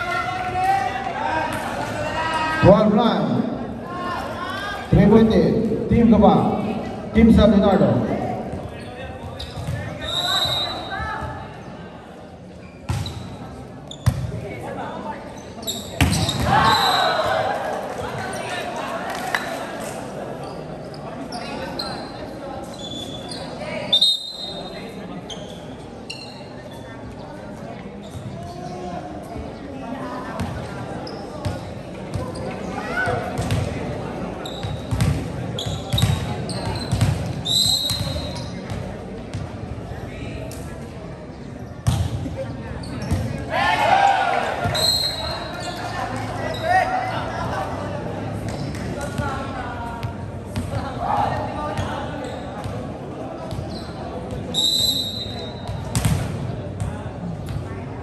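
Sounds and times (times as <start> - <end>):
shoes squeaking: 8.6 - 11.2, 15.3 - 17.2, 34.4 - 38.8, 53.4 - 55.8
spectators and players shouting: 16.2 - 18.8, 43.4 - 47.5.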